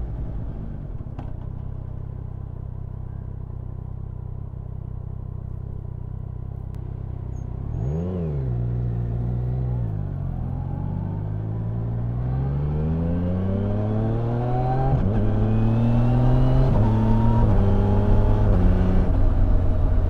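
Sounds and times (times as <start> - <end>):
motorcycle engine revving: 7.3 - 20.0.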